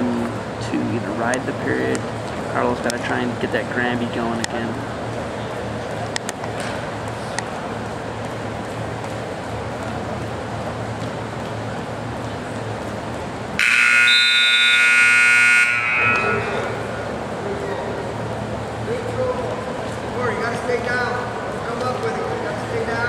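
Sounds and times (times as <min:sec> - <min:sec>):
crowd murmur: 0:00.0 - 0:13.6, 0:16.0 - 0:23.0
scoreboard buzzer: 0:13.6 - 0:16.8.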